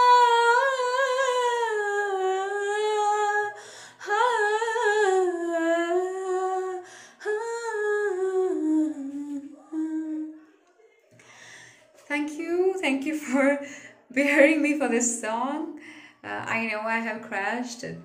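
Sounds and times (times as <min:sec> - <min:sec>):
woman singing unaccompanied: 0:00.0 - 0:10.5.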